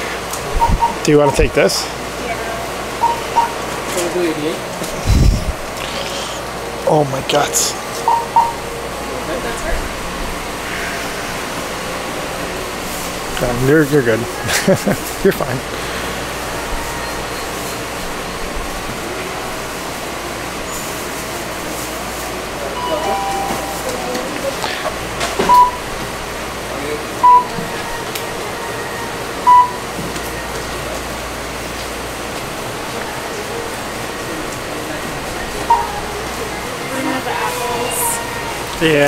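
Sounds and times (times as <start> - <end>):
store hum: 0.0 - 39.0
register beeps: 0.6 - 1.0, 3.0 - 3.6, 8.0 - 8.7, 22.8 - 24.4, 25.4 - 25.9, 27.2 - 27.6, 29.4 - 29.8, 35.7 - 36.0.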